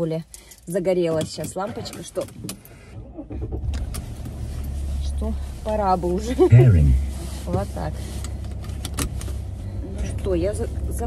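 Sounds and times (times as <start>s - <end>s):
car engine and road hum: 1.8s - 11.0s.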